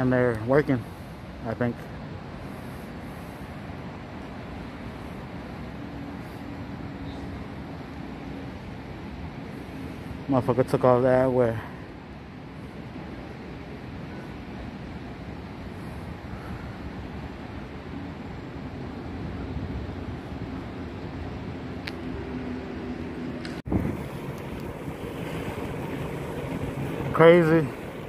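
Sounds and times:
road noise: 0.0s - 28.0s
wind rushing over microphone: 11.8s - 28.0s.

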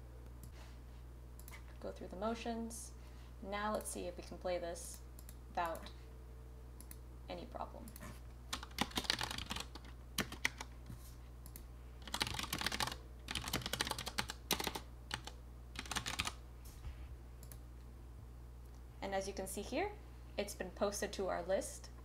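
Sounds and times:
typing on computer keyboard: 8.5s - 10.7s, 11.5s - 16.4s.

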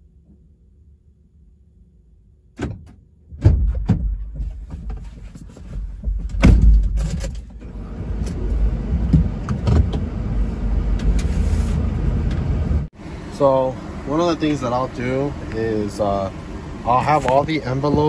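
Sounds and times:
knocks and clunks inside van: 2.6s - 12.9s, 17.1s - 18.0s.

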